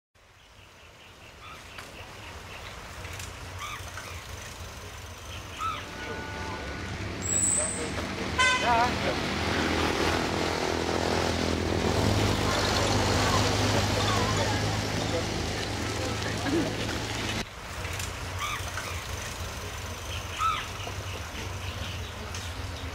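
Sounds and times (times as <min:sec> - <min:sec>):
low engine hum: 0:02.4 - 0:22.9
people's voices: 0:04.8 - 0:09.8, 0:11.8 - 0:17.4
short horn toot: 0:05.8 - 0:07.8, 0:08.4 - 0:08.8.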